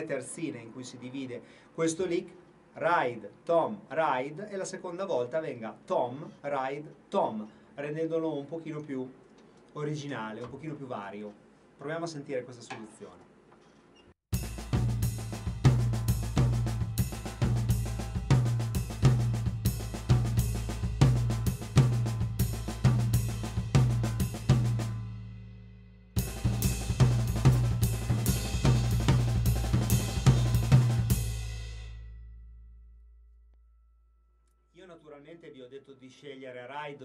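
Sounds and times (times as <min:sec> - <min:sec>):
drum kit fill: 0:14.3 - 0:32.7
bass drum strokes: 0:14.3 - 0:32.8.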